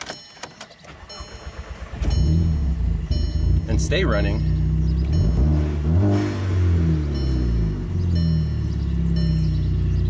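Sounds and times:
car engine cranking: 0:00.0 - 0:10.0.

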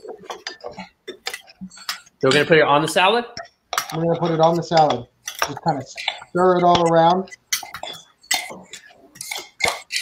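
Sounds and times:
utensils clinking against bowls: 0:00.0 - 0:10.0.

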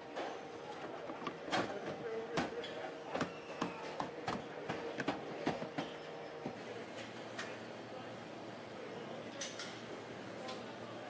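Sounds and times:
steady machine hum: 0:06.6 - 0:11.0.

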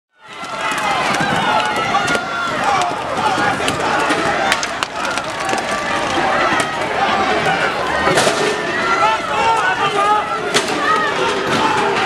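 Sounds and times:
crowd shouting: 0:00.1 - 0:12.0.

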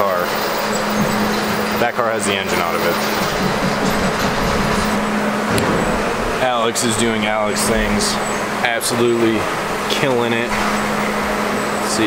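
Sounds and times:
constant low hum: 0:00.0 - 0:12.0
loud rushing machine noise: 0:00.0 - 0:12.0.

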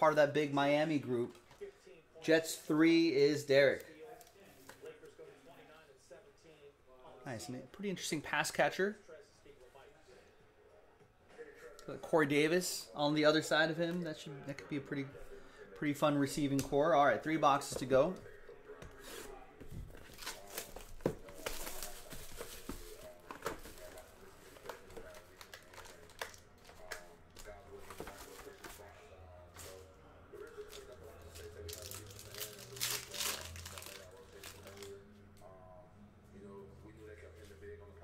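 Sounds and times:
plastic wrapping tearing and crinkling: 0:24.7 - 0:27.5, 0:30.7 - 0:35.0.

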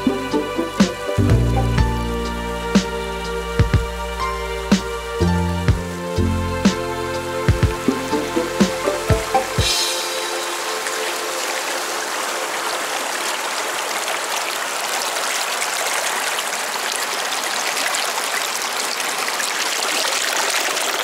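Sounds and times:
background music: 0:00.0 - 0:13.2
stream running over rocks: 0:00.0 - 0:21.0.

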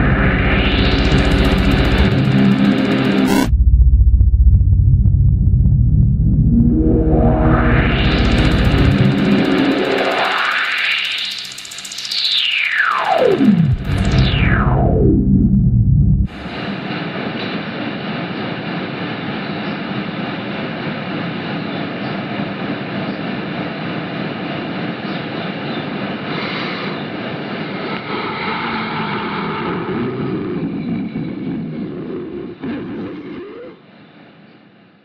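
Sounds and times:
dense droning noise: 0:00.0 - 0:21.6, 0:22.4 - 0:34.9.

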